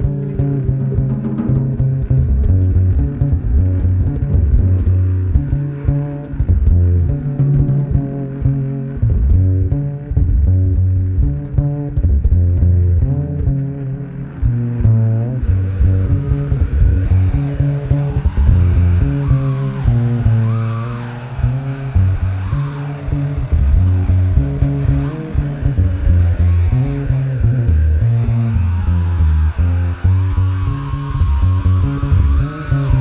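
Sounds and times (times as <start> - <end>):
electric upright bass line: 0.0 - 33.0
sliding higher instrument lines: 13.8 - 33.0.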